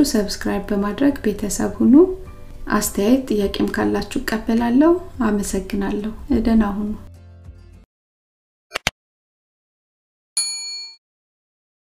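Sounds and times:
notification bell ding: 10.4 - 11.0.

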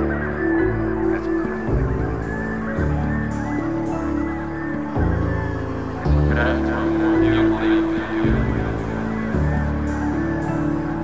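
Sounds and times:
deep bass line: 0.0 - 11.0
synth phrases: 0.0 - 11.0
synthesizer chords: 0.0 - 11.0.

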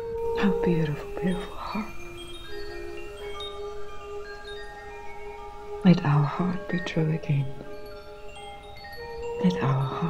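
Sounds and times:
chime tones ringing: 0.0 - 10.0.

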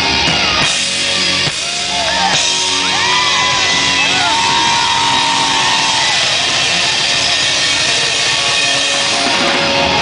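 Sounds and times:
rock band playing: 0.0 - 10.0.

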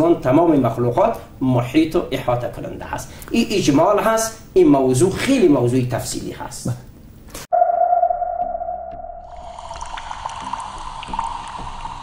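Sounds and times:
held synth tone: 7.5 - 9.9.

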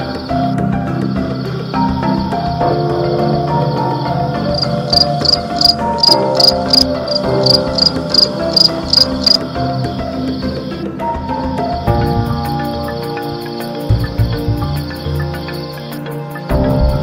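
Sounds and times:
soft melodic music: 0.0 - 17.0
cricket chirping: 1.1 - 10.8, 12.4 - 16.2.

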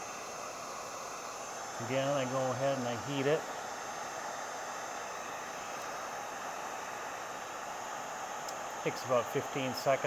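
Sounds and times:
heat gun fan blowing: 0.0 - 10.0.

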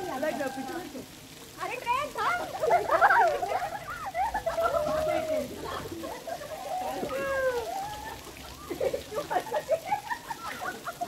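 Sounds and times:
girls shouting and squealing: 2.2 - 10.6.

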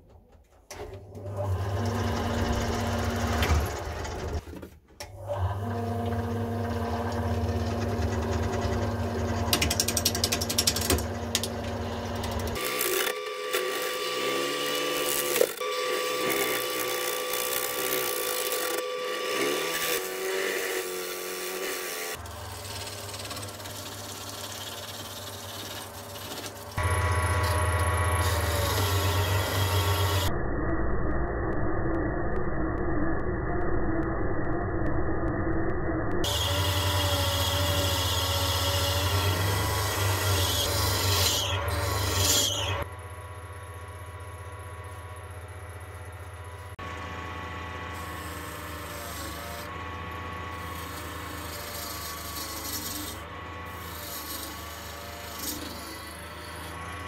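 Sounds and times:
lathe motor hum: 5.4 - 30.3, 36.3 - 57.0
gouge scraping spinning log: 15.2 - 30.3, 48.0 - 57.0.

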